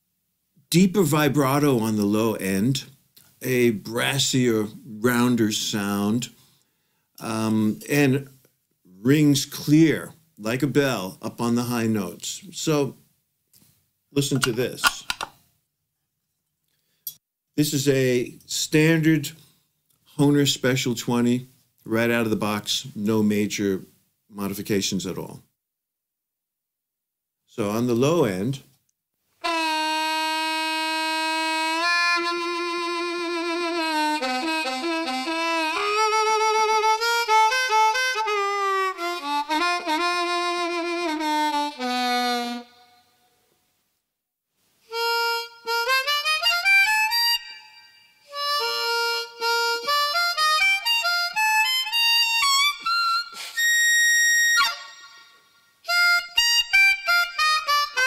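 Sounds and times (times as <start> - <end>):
harmonica played through brass horn: 29.4 - 43.3, 44.9 - 58.0.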